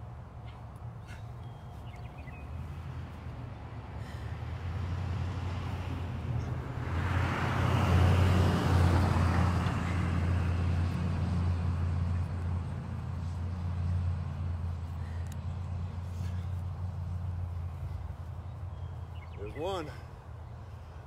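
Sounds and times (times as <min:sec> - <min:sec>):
road noise: 0:00.0 - 0:21.0
vehicle engine hum passing: 0:00.0 - 0:21.0.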